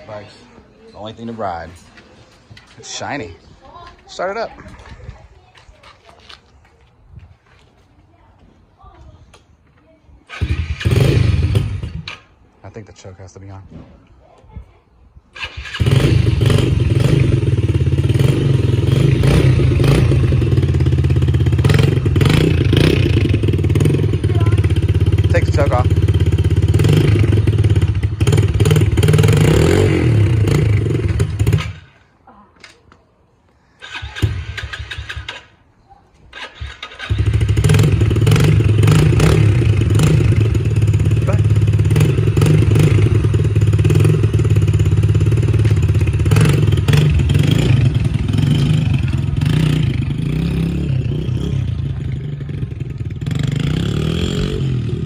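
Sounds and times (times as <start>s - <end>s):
small motorbike engine idling: 20.3s - 29.2s.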